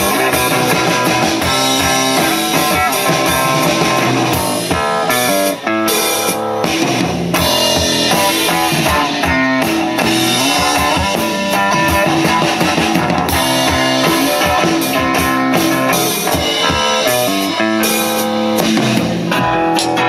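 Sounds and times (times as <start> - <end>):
amplified acoustic-electric guitar: 0.0 - 20.0
drum kit: 0.0 - 20.0.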